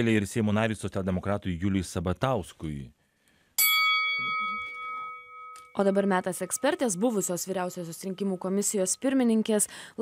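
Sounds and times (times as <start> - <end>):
boxing ring bell ringing: 3.6 - 8.8.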